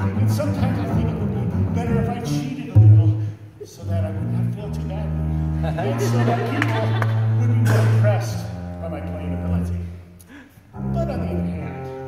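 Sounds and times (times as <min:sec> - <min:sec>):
double bass low notes: 0:00.0 - 0:12.0.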